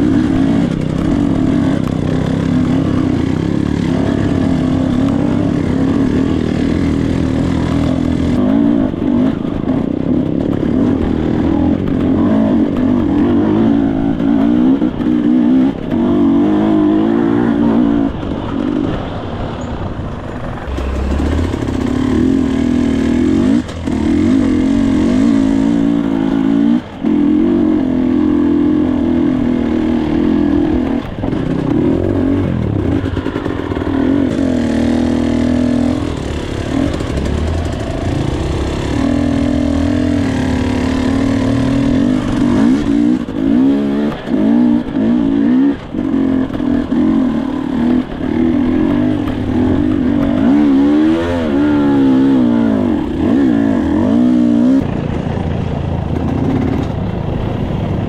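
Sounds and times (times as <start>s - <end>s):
dirt bike engine revving: 0.0s - 57.6s.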